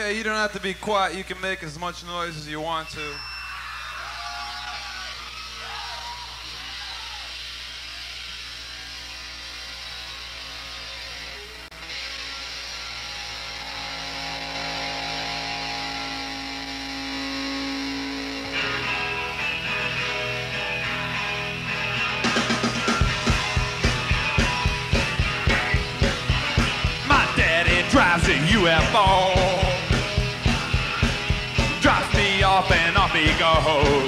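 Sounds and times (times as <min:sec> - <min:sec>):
low amplifier hum: 0:02.8 - 0:34.0
electric guitar ringing notes: 0:06.4 - 0:34.0
band playing: 0:11.8 - 0:34.0.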